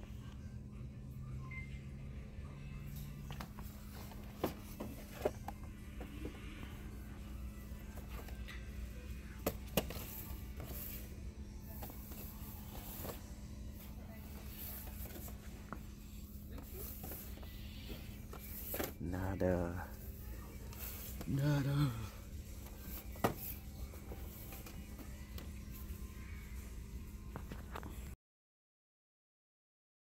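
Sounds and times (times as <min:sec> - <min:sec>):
faint background music: 0:00.0 - 0:28.2
steady low hum: 0:00.0 - 0:28.2.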